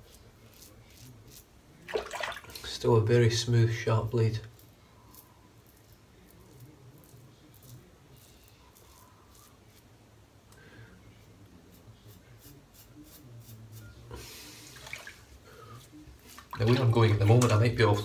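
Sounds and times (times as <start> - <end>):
razor scraping stubble: 0.0 - 1.6, 4.2 - 9.9, 11.7 - 14.0.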